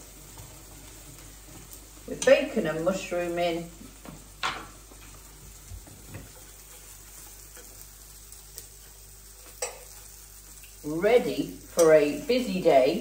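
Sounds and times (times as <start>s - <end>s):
food sizzling in a pan: 0.0s - 13.0s.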